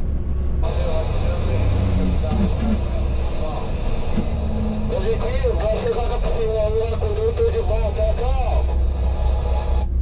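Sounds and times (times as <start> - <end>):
coach engine and tyres rumbling: 0.0 - 10.0.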